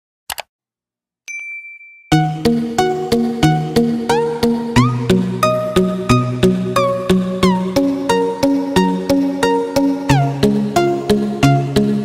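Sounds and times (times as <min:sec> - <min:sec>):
notification bell ding: 0:01.3 - 0:02.3.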